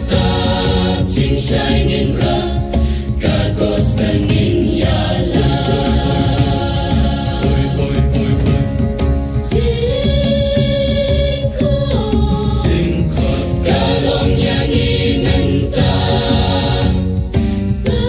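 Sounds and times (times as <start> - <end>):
choir chanting: 0.0 - 8.7, 9.5 - 17.2.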